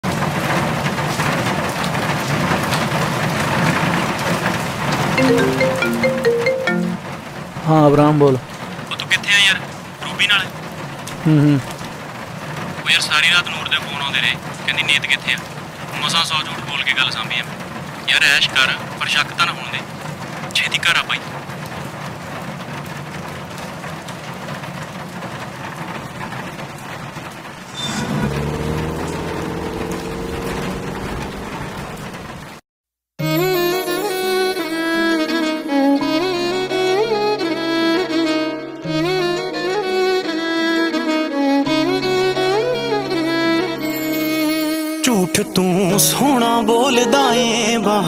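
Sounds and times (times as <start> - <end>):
heavy rain pouring: 0.0 - 32.6, 41.7 - 48.0.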